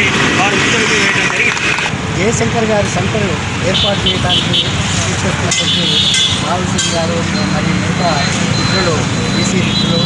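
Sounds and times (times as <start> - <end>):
man speaking: 0.0 - 10.0
road traffic rumble: 0.0 - 10.0.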